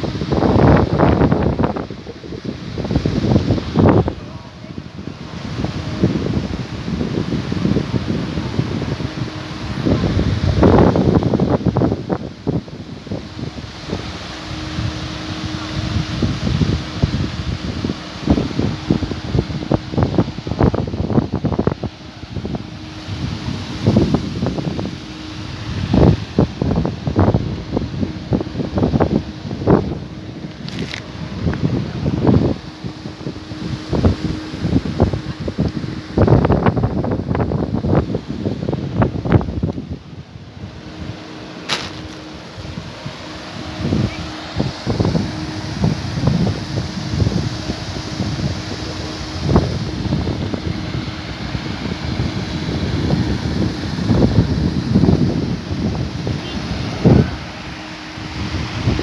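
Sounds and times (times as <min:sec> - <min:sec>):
steady low hum: 0:00.0 - 0:59.0
wind buffeting microphone: 0:00.0 - 0:59.0.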